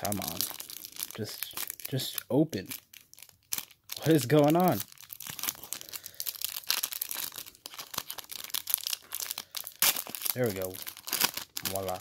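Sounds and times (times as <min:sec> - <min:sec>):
foil wrapper crinkling and tearing: 0:00.0 - 0:12.0.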